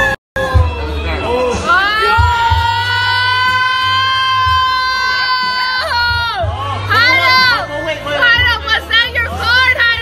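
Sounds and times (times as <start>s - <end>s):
bar music with heavy bass: 0.0s - 10.0s.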